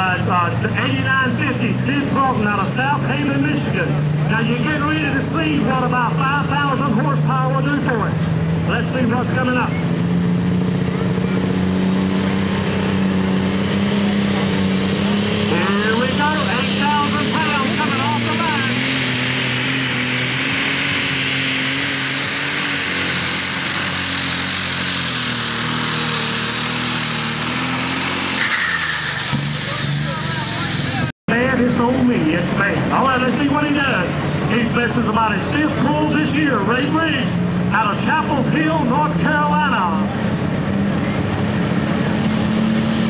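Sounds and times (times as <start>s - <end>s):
high turbo whine: 0.0s - 43.0s
tractor diesel engine at full throttle: 0.0s - 43.0s.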